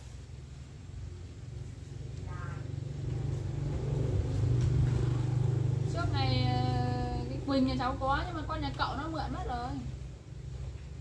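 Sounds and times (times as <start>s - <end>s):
motorbike engine rumbling: 0.0s - 11.0s.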